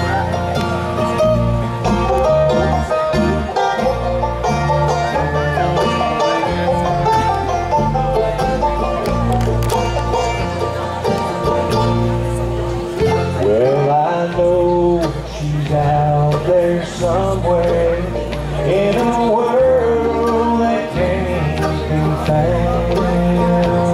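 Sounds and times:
bluegrass band playing: 0:00.0 - 0:23.9.

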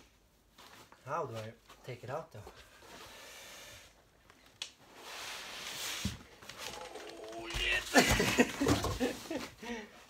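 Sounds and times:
foam and cardboard scraping: 0:04.9 - 0:06.8.

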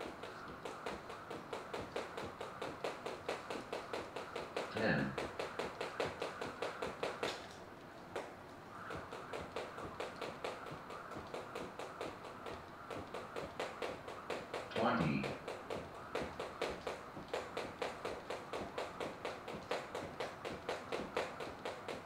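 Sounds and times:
jump rope slapping: 0:00.0 - 0:22.0.

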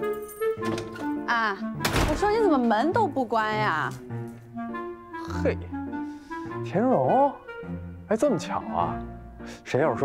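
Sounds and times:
clarinet background music: 0:00.0 - 0:10.0
wooden door thudding: 0:01.8 - 0:02.5.

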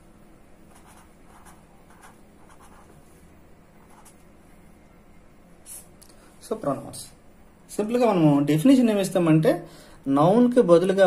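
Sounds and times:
marker pen writing on paper: 0:00.7 - 0:03.0, 0:03.8 - 0:04.2.

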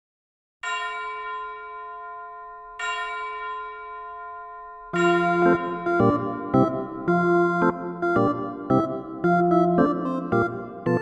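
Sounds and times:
bell-like chime ringing: 0:00.6 - 0:07.4.

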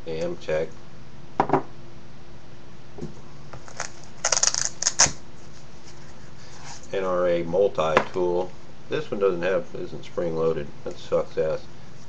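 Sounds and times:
knock on wooden tabletop: 0:01.4 - 0:01.7.

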